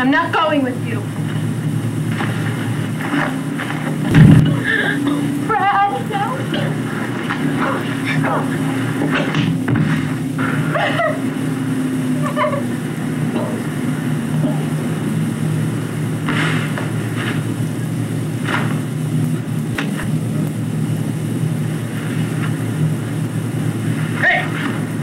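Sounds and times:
film editing machine humming: 0.0s - 25.0s.

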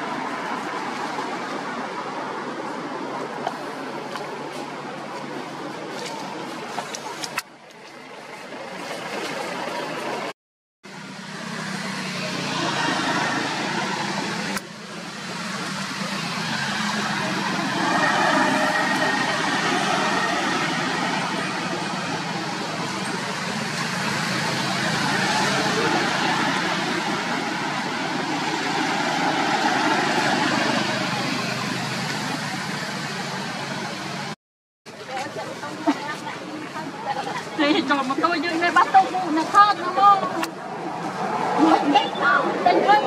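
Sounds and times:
vehicle engine and traffic: 0.0s - 43.0s
indistinct voices: 12.2s - 34.3s, 34.9s - 43.0s.

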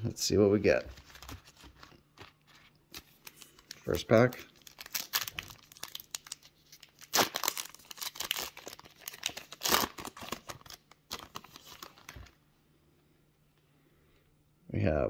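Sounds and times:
foil wrapper tearing and crinkling: 3.0s - 12.2s.

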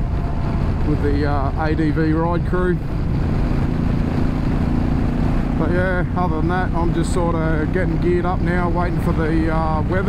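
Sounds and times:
motorcycle engine droning: 0.0s - 10.0s
road noise: 0.0s - 10.0s
wind noise: 0.0s - 10.0s.

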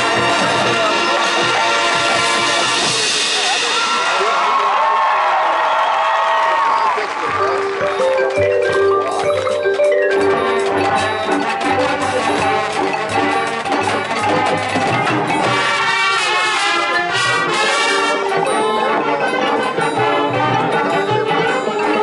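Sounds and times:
marching band playing: 0.0s - 22.0s
marimbas and mallet percussion: 7.2s - 22.0s.

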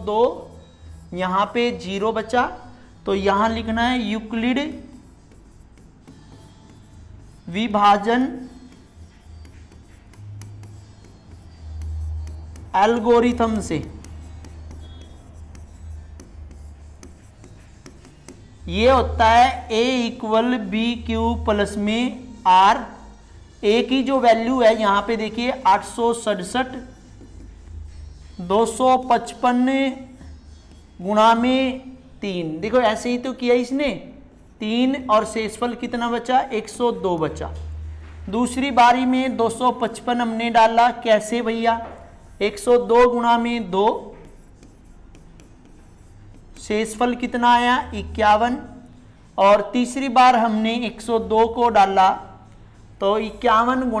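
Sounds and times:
pen scratching on paper: 0.0s - 1.8s, 3.4s - 18.7s, 25.0s - 31.5s, 34.3s - 37.3s, 41.8s - 47.3s.

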